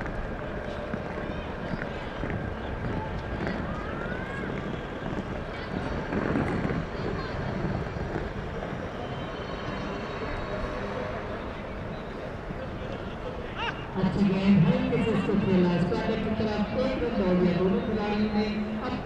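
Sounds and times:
wind buffeting microphone: 0.0s - 14.2s
distant indistinct voices: 0.0s - 19.0s.

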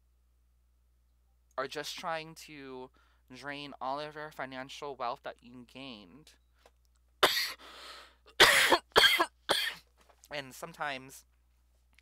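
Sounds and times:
person coughing: 7.2s - 7.6s, 8.3s - 9.8s
breath drawn in: 7.6s - 8.2s.

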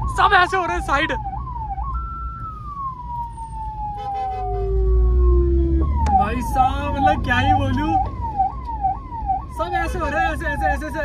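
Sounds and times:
ambulance siren falling tone: 0.0s - 11.0s
van engine and road rumble: 0.0s - 11.0s.

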